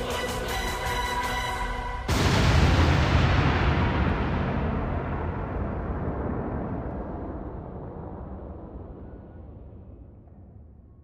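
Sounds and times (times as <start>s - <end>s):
explosion rumble with hiss: 2.1s - 10.2s.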